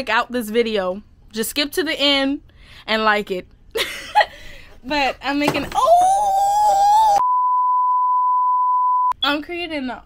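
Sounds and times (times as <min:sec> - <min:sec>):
woman crying out: 0:05.8 - 0:07.2
high-pitched sine beep: 0:07.2 - 0:09.2.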